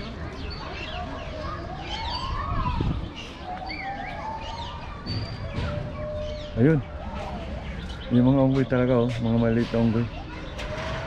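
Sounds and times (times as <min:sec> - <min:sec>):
small birds chirping: 0:00.0 - 0:11.0
distant siren wailing: 0:03.4 - 0:08.6.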